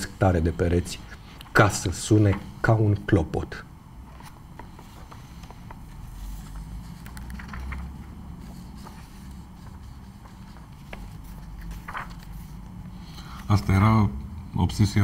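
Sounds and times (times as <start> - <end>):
room hum: 0.0 - 15.0
book pages rustling: 4.0 - 12.7.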